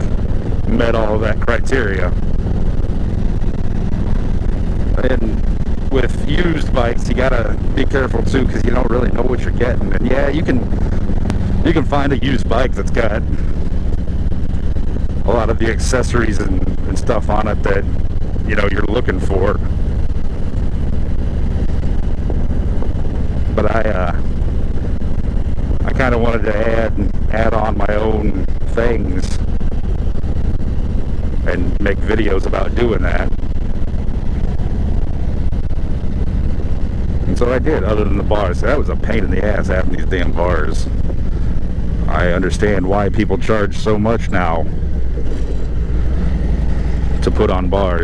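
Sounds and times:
motorcycle engine running: 0.0s - 48.0s
road and wind noise: 0.0s - 48.0s.

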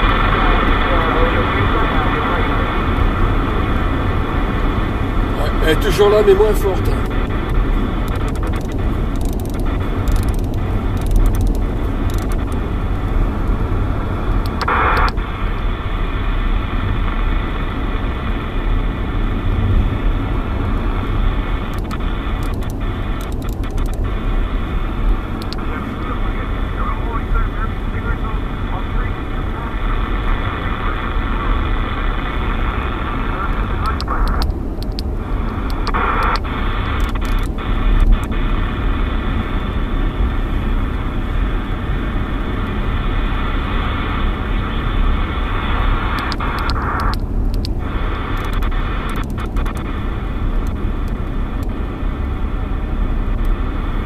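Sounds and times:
radio static hiss: 0.0s - 54.0s
road rumble from vehicle: 0.0s - 54.0s.

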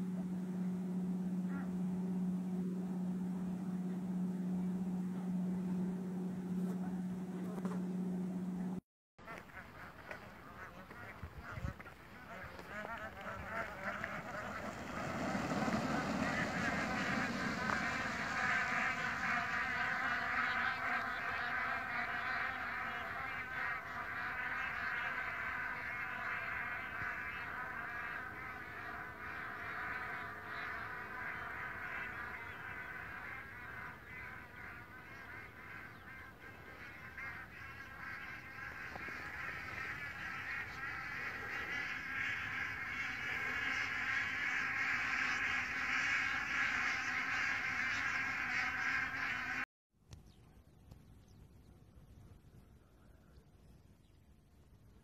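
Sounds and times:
geese honking: 0.0s - 49.7s.

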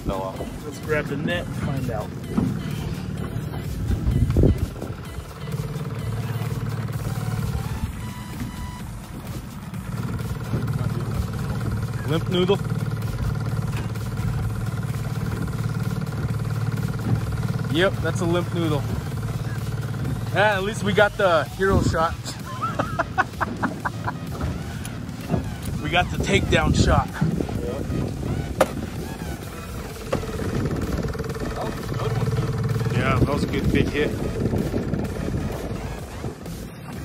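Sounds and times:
outboard motor humming: 0.0s - 37.0s.

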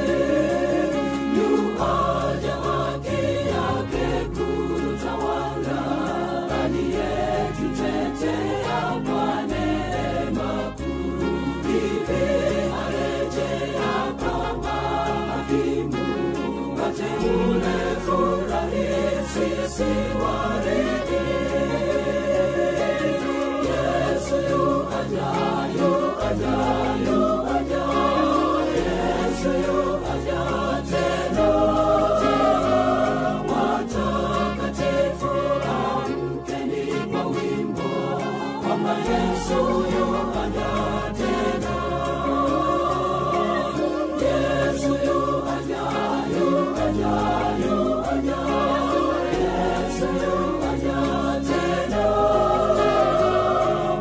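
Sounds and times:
gospel choir with instruments: 0.0s - 54.0s.

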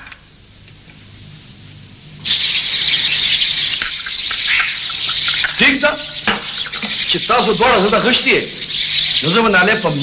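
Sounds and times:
birds chirping: 2.2s - 10.0s.

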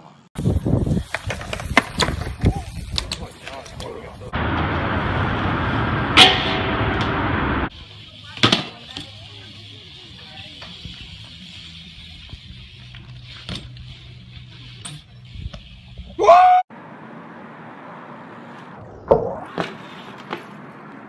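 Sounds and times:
heavy noise: 4.4s - 7.7s.

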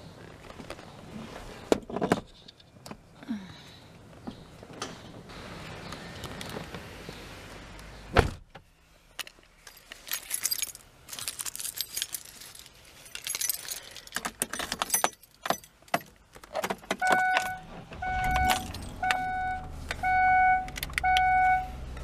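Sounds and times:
car keys jangling and clicking: 9.2s - 22.0s
car warning chime beeps: 17.0s - 21.9s.

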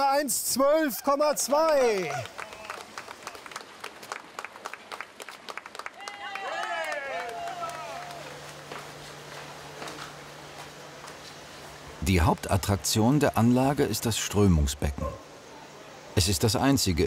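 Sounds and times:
low steady hum: 0.0s - 17.0s
people clapping: 1.2s - 8.9s.

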